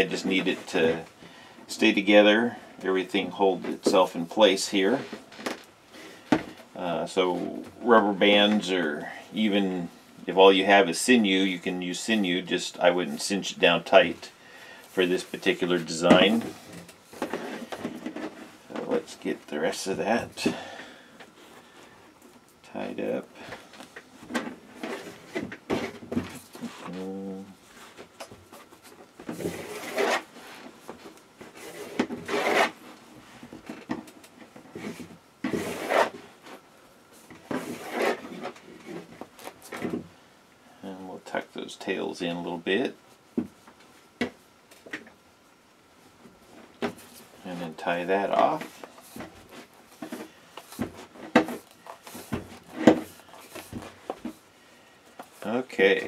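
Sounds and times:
string rubbing on fabric: 31.5s - 32.9s, 34.8s - 36.6s, 37.5s - 39.0s.

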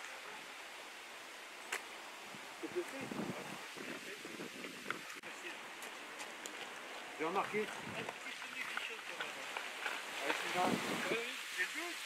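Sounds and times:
outdoor hiss: 0.0s - 12.0s
people talking: 2.6s - 4.5s, 7.2s - 9.6s, 10.2s - 12.0s.

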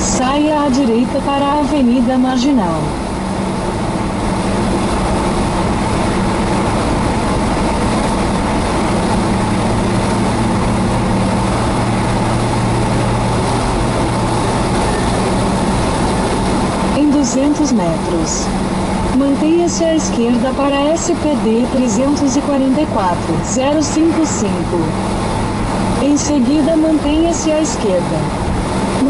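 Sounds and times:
car interior road noise: 0.0s - 29.0s.

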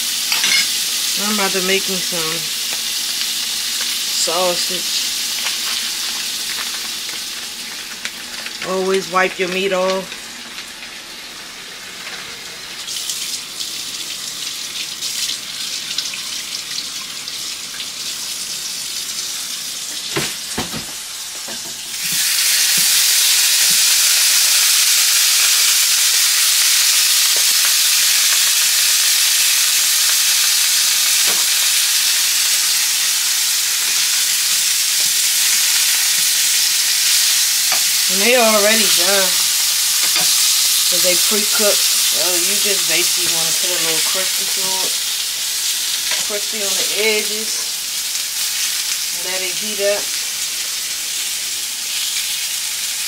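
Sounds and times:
sausage patties sizzling in fat: 0.0s - 53.0s.

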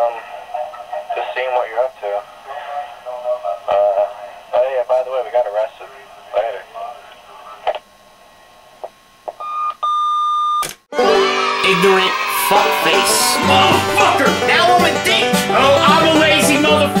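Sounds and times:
answering machine beeps: 9.4s - 10.7s
music: 10.9s - 17.0s
tinny voicemail voice: 11.6s - 17.0s.

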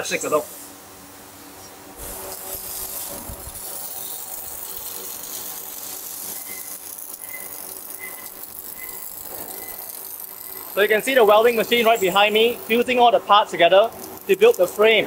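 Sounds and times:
arc welder crackling: 1.3s - 15.0s.

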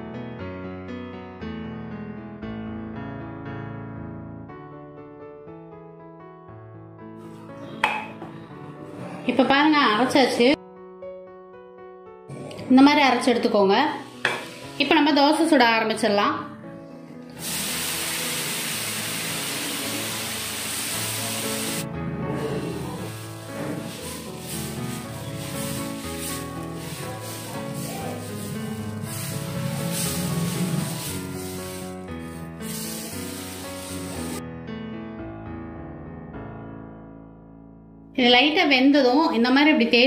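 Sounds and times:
instrumental background music: 4.0s - 40.0s
mixer grinder running: 22.5s - 34.4s.

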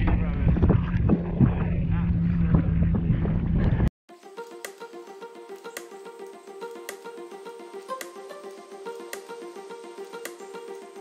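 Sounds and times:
steady low hum: 0.0s - 3.9s
wind buffeting microphone: 0.0s - 3.9s.

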